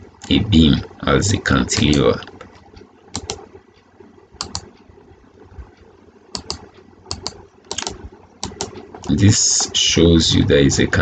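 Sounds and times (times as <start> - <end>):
computer mouse buttons clicking: 1.8 - 3.5, 4.4 - 4.8, 5.6 - 9.1.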